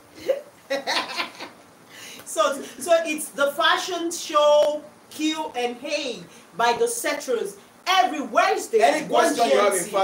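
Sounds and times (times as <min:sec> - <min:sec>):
woman laughing hard: 0:00.2 - 0:01.6.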